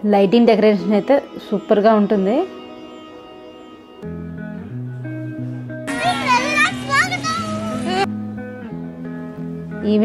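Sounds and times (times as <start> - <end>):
instrumental music with held notes: 0.0 - 10.0
children's excited voices: 5.9 - 8.1.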